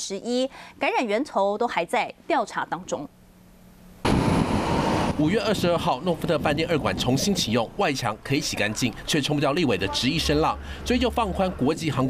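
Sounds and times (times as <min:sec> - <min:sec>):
faint hum: 0:00.0 - 0:12.0
traffic rushing: 0:04.0 - 0:12.0.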